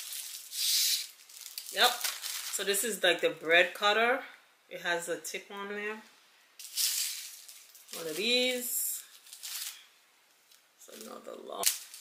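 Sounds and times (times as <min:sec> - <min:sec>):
plastic packaging rustling: 0:00.0 - 0:02.9, 0:06.6 - 0:12.0.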